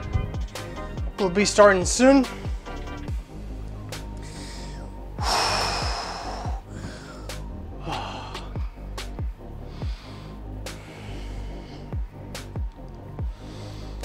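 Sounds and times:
background music with steady beat: 0.0s - 14.0s
man breathing hard: 2.4s - 14.0s.

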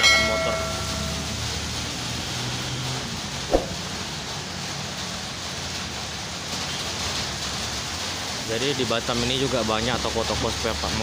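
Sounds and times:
steady rain falling: 0.0s - 11.0s
short knock: 3.5s - 3.8s.

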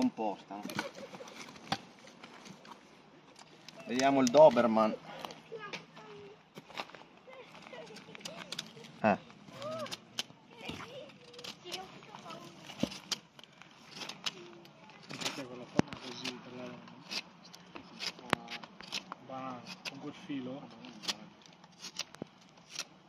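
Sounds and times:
knife carving wood: 9.6s - 23.0s.

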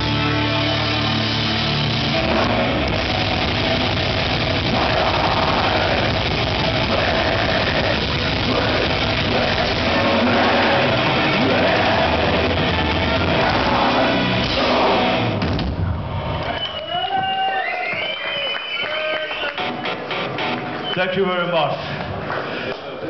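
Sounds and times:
distorted electric guitars: 0.0s - 16.4s, 19.6s - 21.0s
bass guitar: 0.0s - 16.5s
drums: 0.0s - 20.9s.

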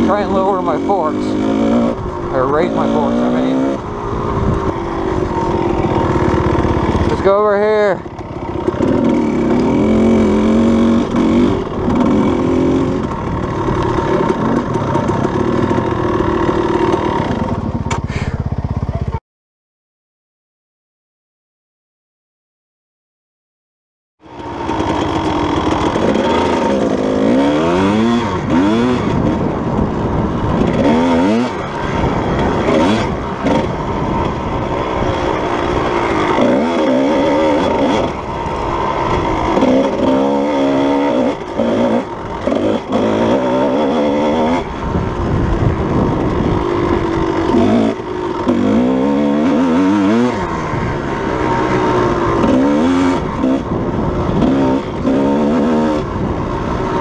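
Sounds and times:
dirt bike engine revving: 0.0s - 19.1s, 24.2s - 57.0s.

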